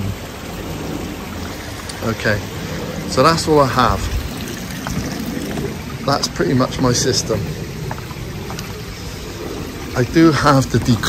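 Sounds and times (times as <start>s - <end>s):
running water from pond waterfall: 0.0s - 11.0s.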